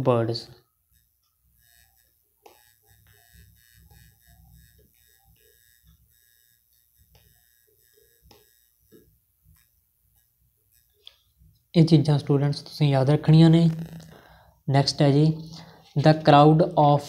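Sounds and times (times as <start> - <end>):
low hum: 0.7 - 16.8.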